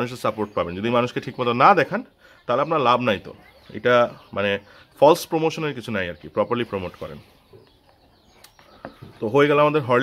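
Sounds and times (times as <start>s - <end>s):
man speaking: 0.0s - 7.3s, 9.1s - 10.0s.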